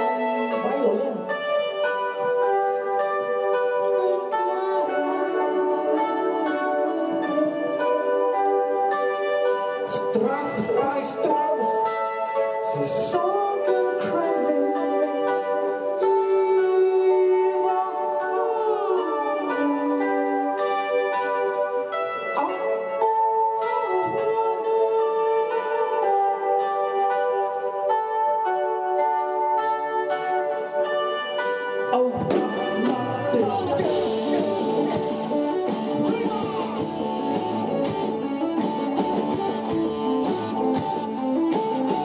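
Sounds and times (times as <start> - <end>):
held keyboard notes: 0.0 - 42.0
lead melody with bent notes: 0.0 - 42.0
drums and guitars: 30.6 - 42.0.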